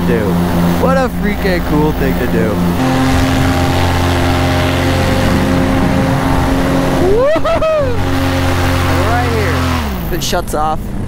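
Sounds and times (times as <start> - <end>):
paramotor engine drone: 0.0 - 11.0.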